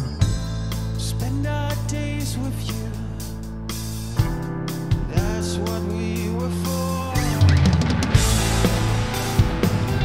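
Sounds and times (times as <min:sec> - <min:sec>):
held bass and keyboard notes: 0:00.0 - 0:10.0
drum fill: 0:03.7 - 0:10.0.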